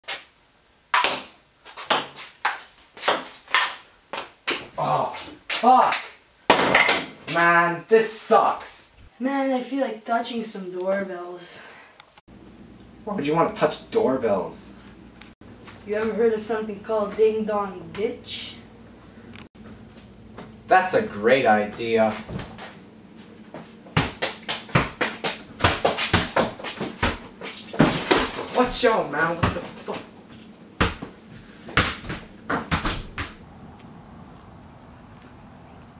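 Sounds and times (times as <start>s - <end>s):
ping-pong ball hits: 0.9s - 1.3s
hurried footsteps on hard floor: 23.5s - 28.8s.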